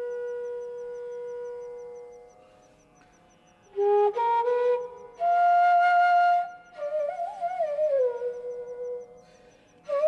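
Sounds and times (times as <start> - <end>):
bamboo flute melody: 0.0 - 2.4, 3.6 - 10.0.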